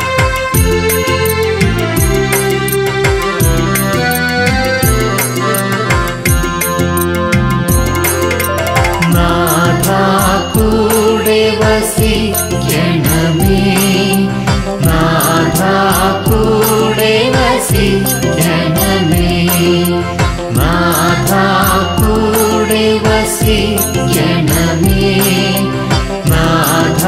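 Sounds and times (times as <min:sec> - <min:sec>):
keyboard accompaniment with beat: 0:00.0 - 0:27.0
person singing: 0:09.0 - 0:27.0.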